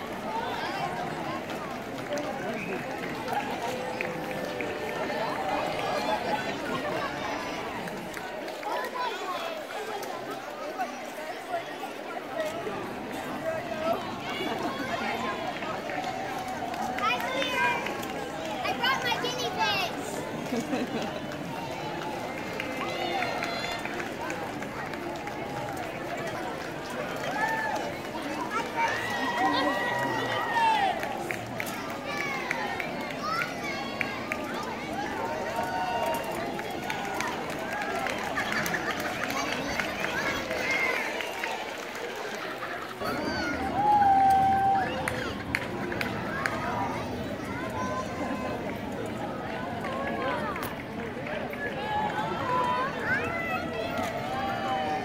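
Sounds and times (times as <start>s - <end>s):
indistinct crowd chatter: 0.0s - 55.0s.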